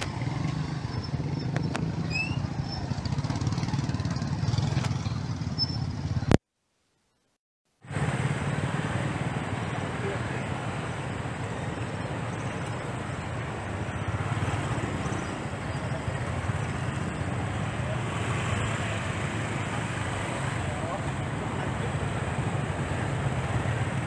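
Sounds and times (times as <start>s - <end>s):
road traffic on a bridge: 0.0s - 6.4s, 7.8s - 24.0s.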